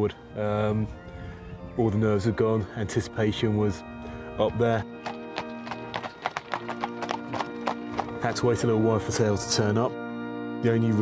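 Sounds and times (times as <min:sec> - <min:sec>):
background music with held chords: 0:00.0 - 0:11.0
horse hooves clip-clopping on pavement: 0:04.8 - 0:09.5.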